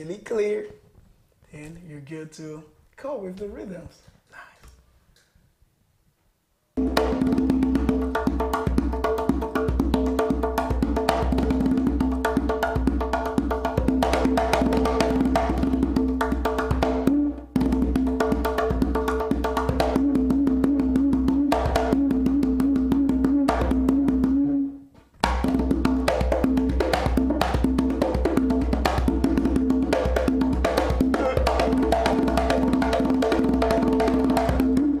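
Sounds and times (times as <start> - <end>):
conga drum played by hand: 6.8 - 24.6, 25.2 - 35.0.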